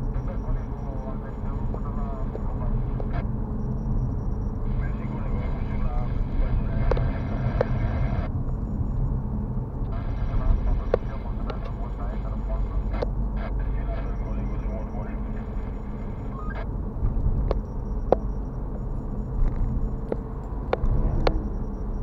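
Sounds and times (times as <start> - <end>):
car engine and tyre rumble: 0.0 - 22.0.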